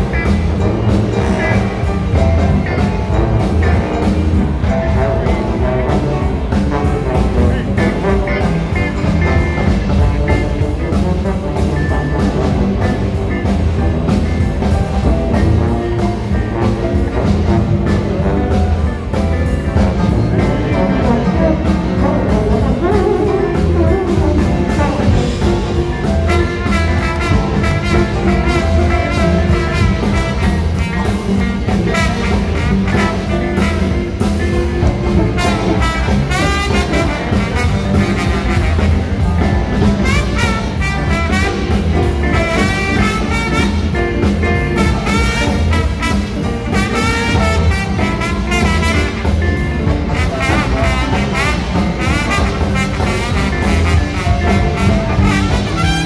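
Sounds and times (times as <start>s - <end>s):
electric guitar: 0.0s - 56.0s
horn section playing: 0.0s - 56.0s
live blues band playing: 0.0s - 56.0s.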